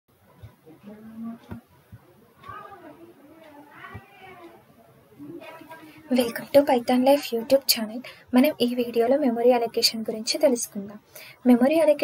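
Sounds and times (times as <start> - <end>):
faint voice-like sounds: 0.6 - 8.2.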